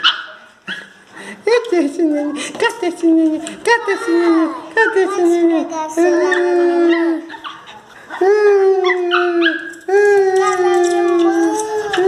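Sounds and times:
small dogs barking and yelping: 0:00.0 - 0:01.0, 0:06.0 - 0:12.0.

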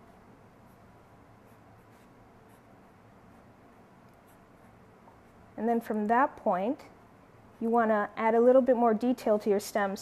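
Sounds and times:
pencil scratching on paper: 0:00.7 - 0:02.7, 0:04.2 - 0:05.4.

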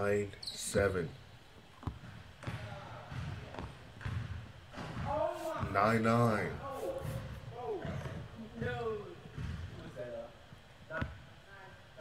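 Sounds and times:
basketball bouncing on hardwood: 0:01.8 - 0:05.8, 0:07.8 - 0:09.8.

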